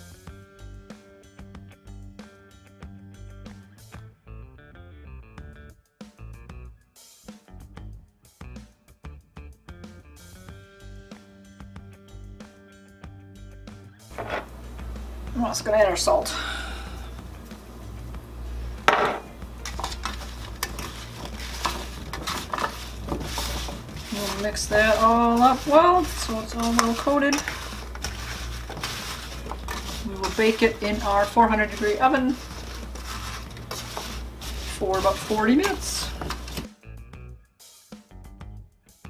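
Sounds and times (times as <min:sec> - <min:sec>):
upbeat music with drum beat: 0:00.0 - 0:04.1, 0:05.4 - 0:14.2, 0:17.2 - 0:39.0
cubes scraping in metal pan: 0:14.1 - 0:14.8, 0:18.8 - 0:36.7.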